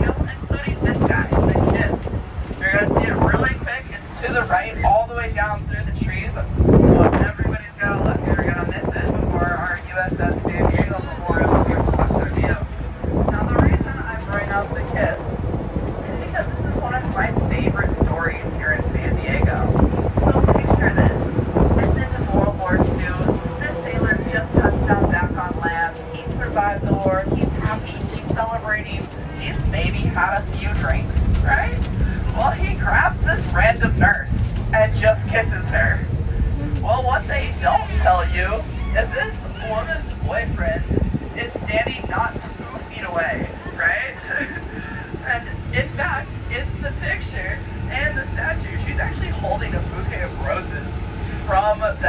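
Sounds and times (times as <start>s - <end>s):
indistinct talking: 0.0s - 52.0s
vehicle rumble: 0.0s - 52.0s
wind on microphone: 0.0s - 52.0s.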